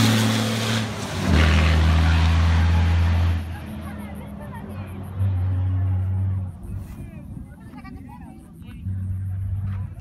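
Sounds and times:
rally car engine drone: 0:00.0 - 0:07.4, 0:08.5 - 0:10.0
onlookers' voices: 0:01.4 - 0:10.0.

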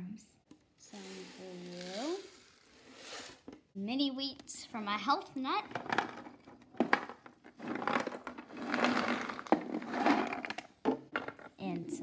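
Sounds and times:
cereal pouring into plastic bowl: 0:00.9 - 0:03.4, 0:07.6 - 0:10.5.

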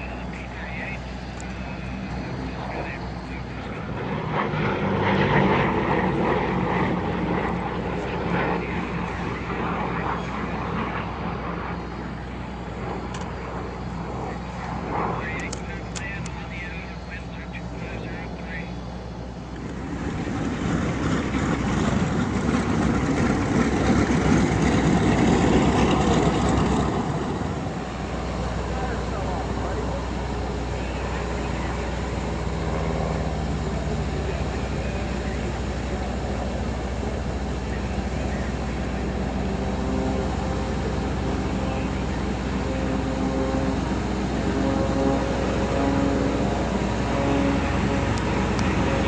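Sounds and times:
propeller plane engines droning: 0:00.0 - 0:49.0.

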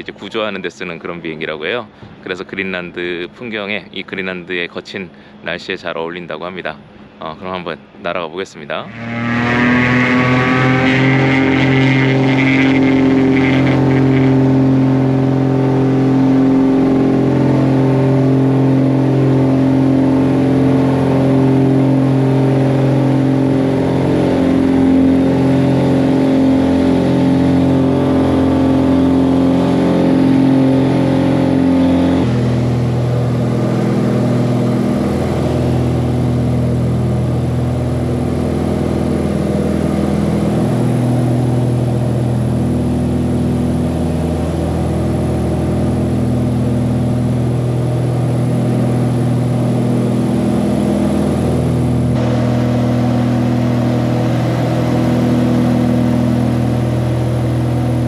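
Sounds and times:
propeller aircraft engines droning: 0:00.0 - 0:58.0.

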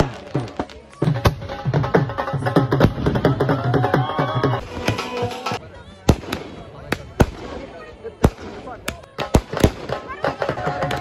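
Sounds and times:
fireworks crackle: 0:00.0 - 0:01.4
fireworks bangs: 0:04.6 - 0:11.0.

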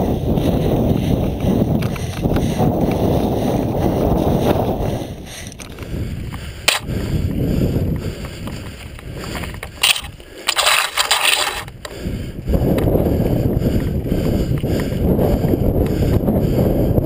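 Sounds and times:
bike tyres rolling over dirt: 0:00.0 - 0:11.8
wind buffeting microphone: 0:00.0 - 0:17.0.

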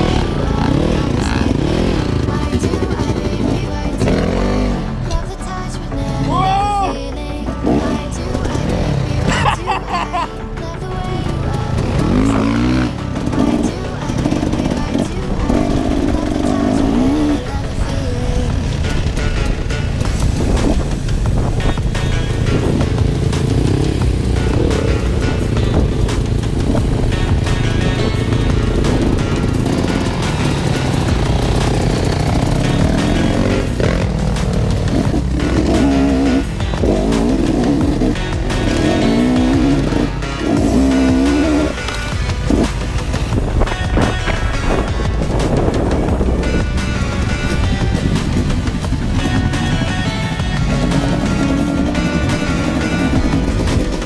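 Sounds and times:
background music: 0:00.0 - 0:54.0
dirt bike engines revving: 0:00.0 - 0:54.0.

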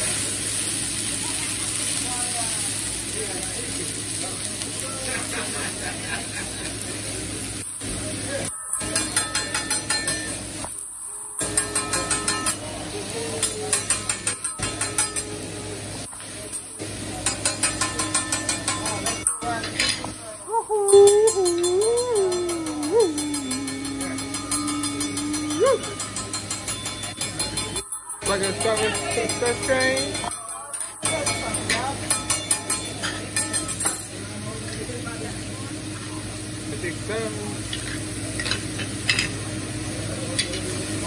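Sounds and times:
vegetables sizzling on griddle: 0:00.0 - 0:41.0
spatula clicking on metal griddle: 0:11.4 - 0:12.6, 0:13.4 - 0:15.4, 0:17.2 - 0:20.0, 0:21.4 - 0:34.0.

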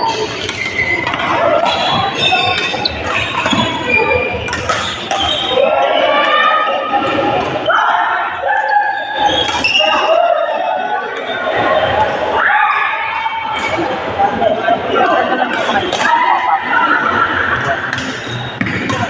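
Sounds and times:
shoes squeaking on court floor: 0:00.0 - 0:05.6
echoing voices: 0:00.0 - 0:19.0.

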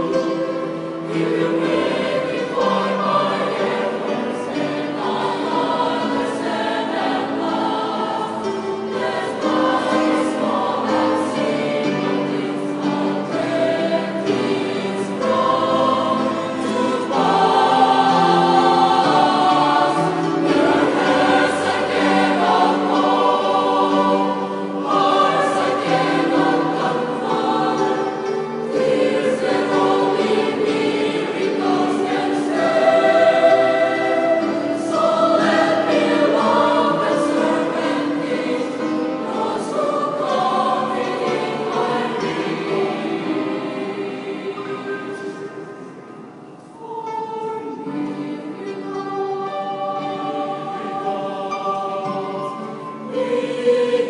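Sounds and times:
choir singing in harmony: 0:00.0 - 0:54.0.

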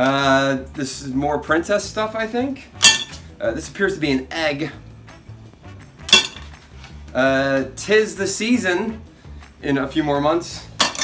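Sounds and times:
soft music with bass pulse: 0:00.0 - 0:11.0
sharp clink: 0:02.8 - 0:03.2.

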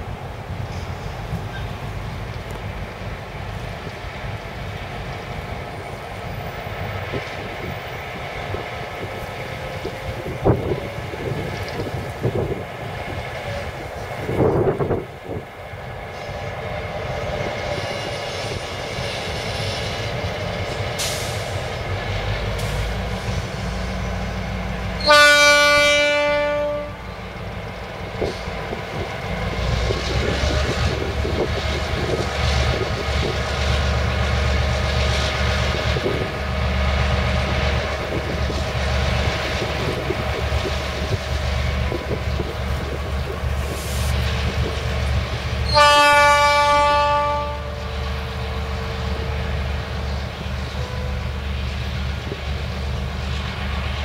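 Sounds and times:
diesel locomotive engine rumble: 0:00.0 - 0:54.0
locomotive horn blasts: 0:25.0 - 0:27.1, 0:45.6 - 0:49.3, 0:50.7 - 0:51.4.

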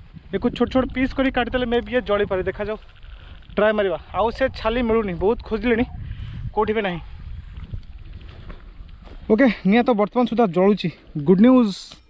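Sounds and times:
wind buffeting microphone: 0:00.0 - 0:11.5.

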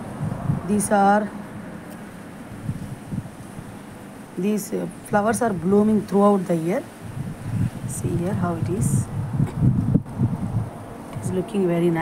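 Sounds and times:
wind buffeting microphone: 0:00.0 - 0:04.3, 0:05.0 - 0:12.0.

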